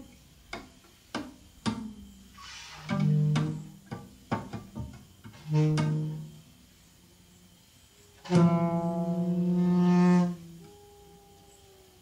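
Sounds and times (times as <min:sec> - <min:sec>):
saxophone and bass duo: 0:02.7 - 0:03.8, 0:05.3 - 0:06.6, 0:08.1 - 0:12.0
faint thin sustained tone: 0:05.4 - 0:12.0.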